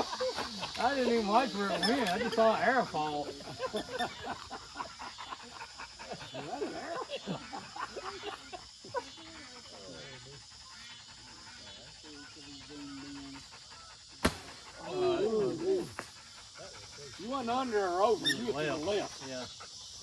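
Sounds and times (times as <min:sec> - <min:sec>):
men talking: 0:00.0 - 0:04.8, 0:05.6 - 0:09.0, 0:11.2 - 0:19.7
men laughing: 0:00.0 - 0:10.4, 0:14.6 - 0:16.0
bow shot crack: 0:14.2 - 0:14.6.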